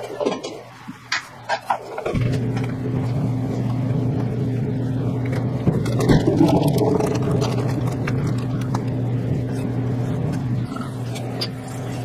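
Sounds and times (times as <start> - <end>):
electric motor hum: 2.0 - 12.0.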